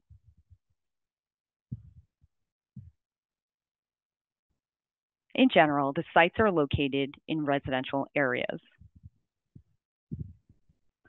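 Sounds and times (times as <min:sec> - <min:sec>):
faint low thumps: 0:01.7 - 0:02.1, 0:10.1 - 0:10.5.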